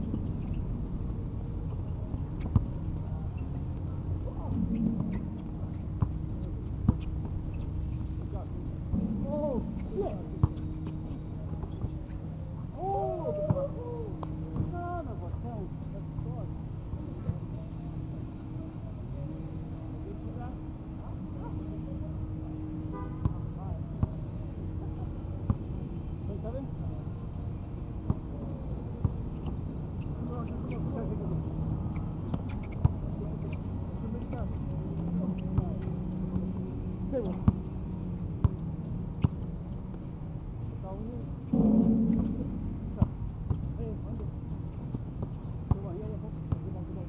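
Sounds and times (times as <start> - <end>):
distant players' voices: 0.0 - 47.0
low hum: 3.0 - 14.6, 41.4 - 44.6.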